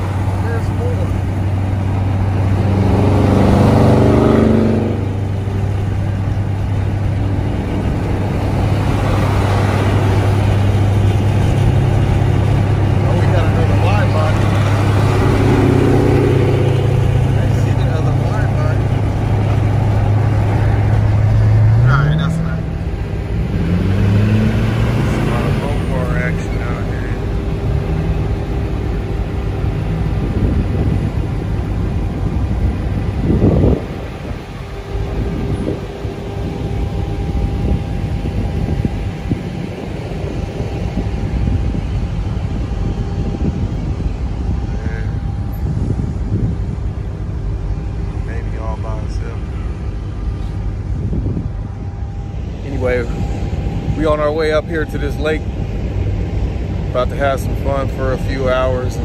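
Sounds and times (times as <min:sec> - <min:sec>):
car engine drone: 0:00.0 - 0:59.0
vehicles in gas station lot: 0:00.0 - 0:59.0.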